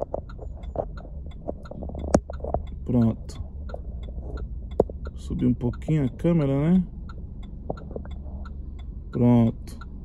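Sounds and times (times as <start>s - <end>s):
car interior hum: 0.0s - 10.0s.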